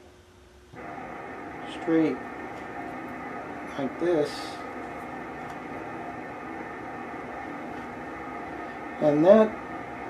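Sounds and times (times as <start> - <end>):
steady hum with constant tones: 0.0 - 10.0.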